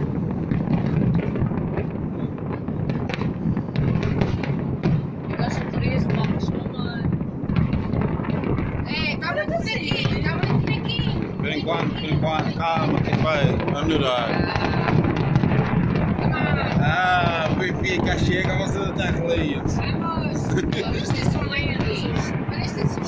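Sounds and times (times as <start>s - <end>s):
fireworks bangs and crackles: 0.0s - 23.0s
fireworks whistles: 0.0s - 23.0s.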